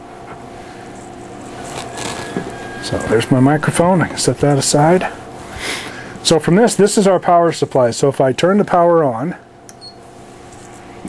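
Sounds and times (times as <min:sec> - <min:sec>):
faint hum: 0:00.0 - 0:11.0
case rubbing on wooden turntable: 0:01.5 - 0:03.2.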